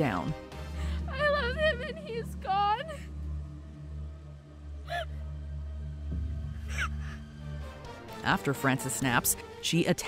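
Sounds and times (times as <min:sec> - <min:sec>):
low music drone: 0:00.0 - 0:10.0.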